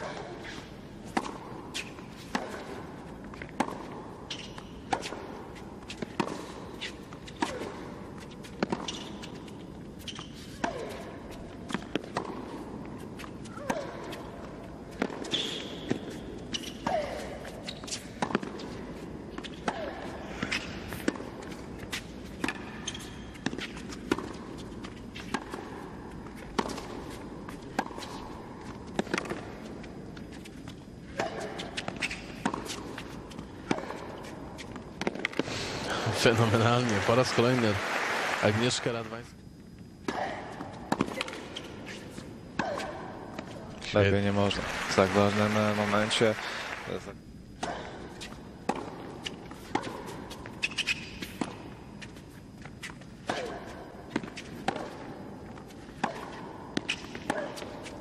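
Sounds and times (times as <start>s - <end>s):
shoes squealing: 0.0s - 25.5s, 26.3s - 35.4s, 40.1s - 47.0s, 47.6s - 58.0s
racquets hitting tennis ball: 0.0s - 58.0s.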